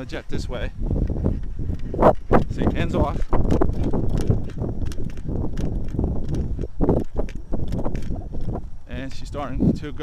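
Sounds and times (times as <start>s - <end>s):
jogging footsteps on grass: 0.0s - 10.0s
low microphone rumble: 0.0s - 10.0s.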